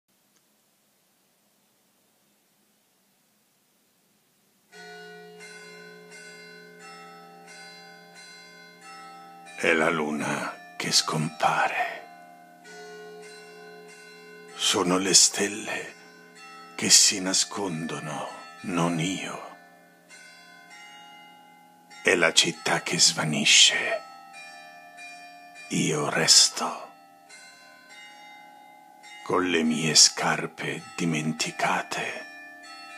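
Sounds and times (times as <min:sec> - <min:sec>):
bells ringing: 0:04.7 - 0:32.9.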